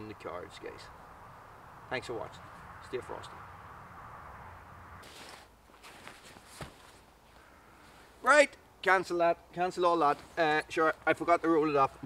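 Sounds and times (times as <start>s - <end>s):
sleeping bag rustling: 5.0s - 8.1s.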